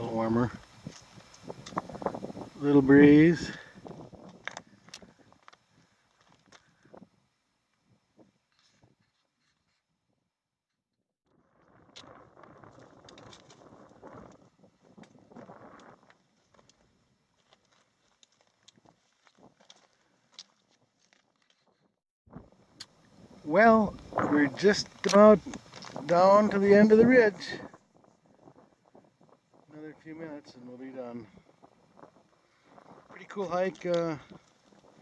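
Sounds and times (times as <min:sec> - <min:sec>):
footsteps on loose rock: 0:03.8 - 0:07.0, 0:12.6 - 0:21.9, 0:24.0 - 0:26.7.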